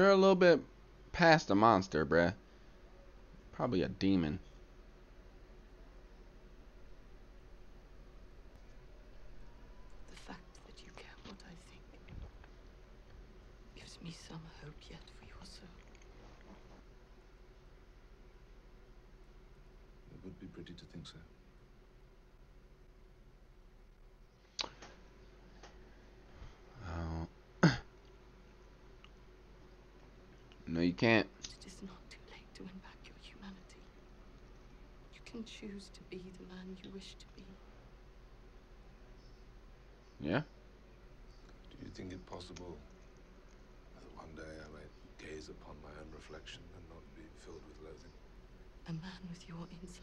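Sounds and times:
man talking: 1.2 - 2.4, 3.5 - 4.4, 20.1 - 21.3, 30.6 - 31.3, 40.2 - 40.5, 41.7 - 42.9, 44.0 - 48.2
quiet speech and whispering: 10.0 - 12.4, 13.7 - 16.7, 20.1 - 21.3, 26.7 - 27.3, 31.4 - 34.0, 35.1 - 37.7, 44.0 - 48.2.

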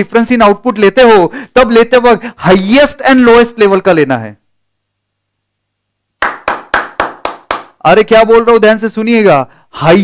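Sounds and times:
man clapping hands: 6.2 - 7.8.

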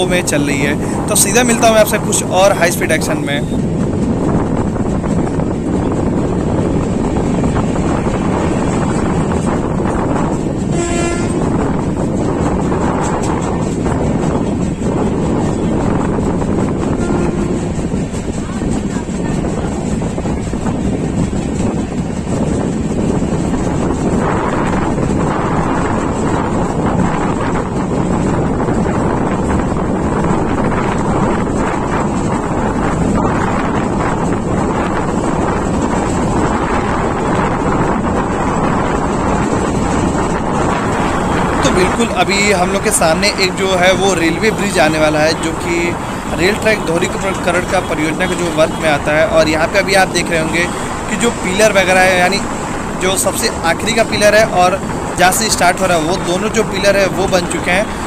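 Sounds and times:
train wheels rumbling on rail: 0.0 - 58.0
wind rushing past window: 0.0 - 58.0.

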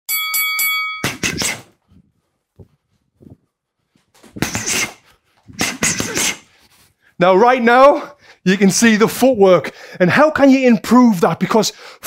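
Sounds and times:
boxing ring bell: 0.1 - 1.2.

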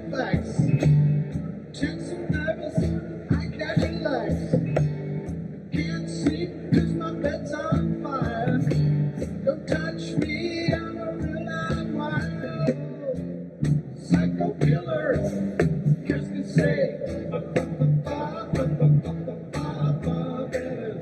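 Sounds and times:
box drum beat: 0.0 - 21.0
electric bass: 0.0 - 21.0
guitar: 0.0 - 21.0.

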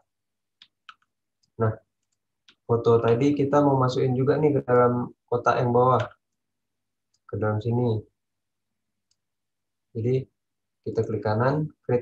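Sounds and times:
person speaking: 0.0 - 6.4, 9.9 - 12.0.

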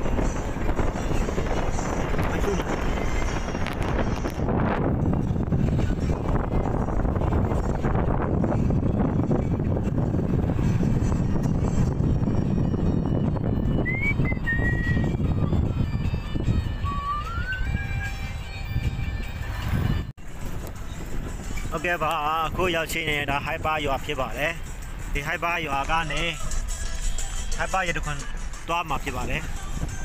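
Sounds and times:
vehicle engine and tyres rumbling: 0.0 - 30.0
faint whistled tones: 13.8 - 15.2.

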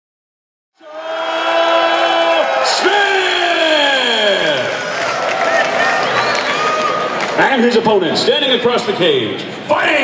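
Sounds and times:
arena crowd cheering: 0.8 - 8.6.

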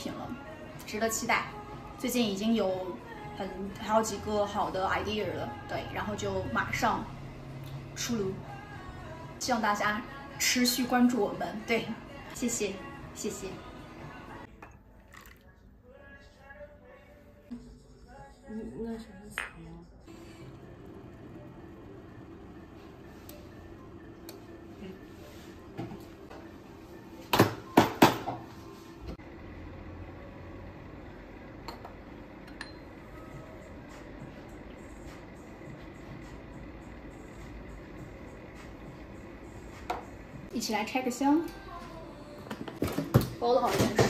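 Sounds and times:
ceramic mug clink: 31.6 - 32.9.

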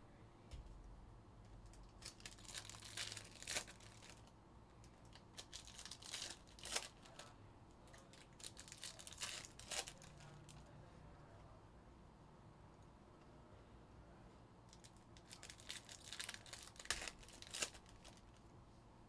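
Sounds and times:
foil packs crinkling: 1.7 - 4.3, 5.0 - 7.3, 8.0 - 10.4, 14.7 - 18.4.

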